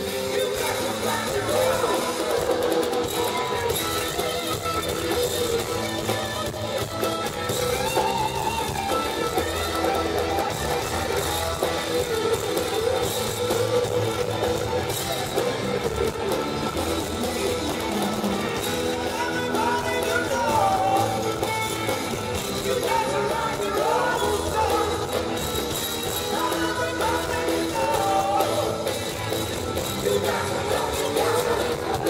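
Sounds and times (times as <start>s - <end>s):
electric guitar: 0.0s - 32.0s
live rock band playing: 0.0s - 32.0s.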